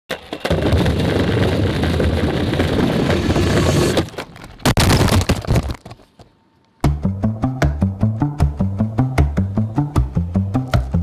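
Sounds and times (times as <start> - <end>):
longboard wheels rolling on concrete: 0.1 - 6.2.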